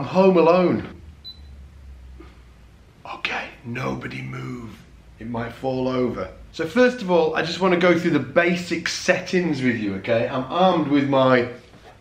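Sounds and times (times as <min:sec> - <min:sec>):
amplifier electrical hum: 0:00.0 - 0:12.0.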